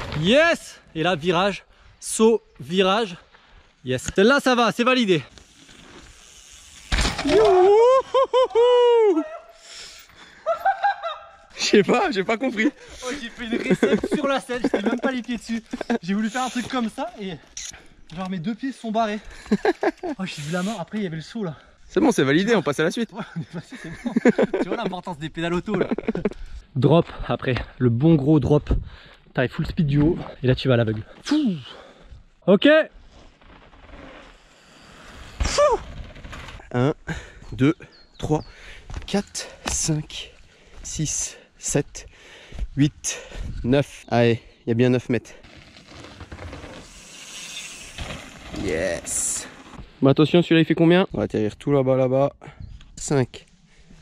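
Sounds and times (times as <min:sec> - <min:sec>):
man crying whoa: 0:07.3 - 0:09.6.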